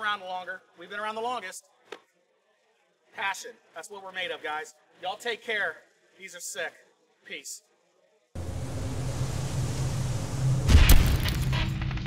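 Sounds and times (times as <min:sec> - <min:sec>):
hissing rumbling drone: 0:08.4 - 0:12.0
loud booming impact: 0:08.4 - 0:12.0.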